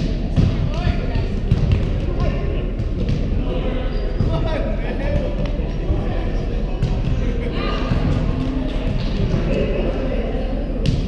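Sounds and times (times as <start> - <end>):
volleyball thuds echoing: 0.0 - 3.4.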